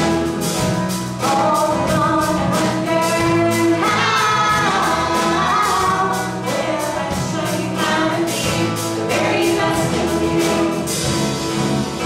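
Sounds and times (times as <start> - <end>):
folk-rock band playing: 0.0 - 12.0
strummed acoustic guitar: 0.0 - 12.0
people singing: 1.2 - 11.1.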